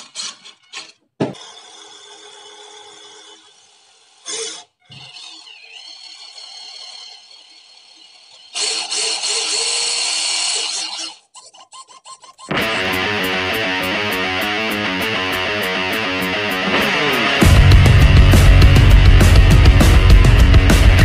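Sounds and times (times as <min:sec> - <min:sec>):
small electric motor whirring: 0:03.1 - 0:11.5.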